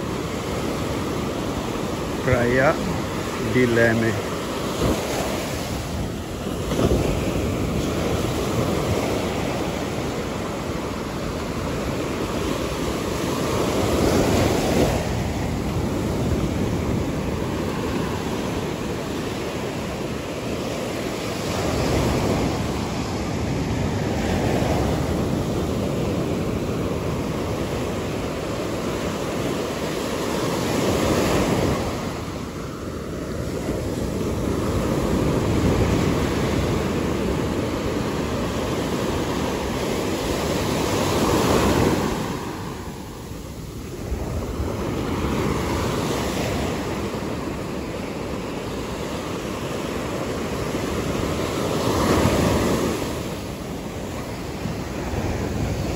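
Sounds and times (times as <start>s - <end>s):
ocean surf breaking on beach: 0.0s - 55.9s.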